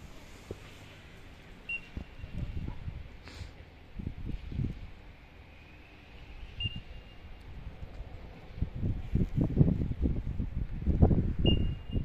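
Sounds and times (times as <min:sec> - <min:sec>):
faint high beep: 0:01.7 - 0:02.4, 0:06.5 - 0:07.3, 0:11.4 - 0:12.0
wind buffeting microphone: 0:01.7 - 0:03.2, 0:03.8 - 0:05.3, 0:06.2 - 0:12.0.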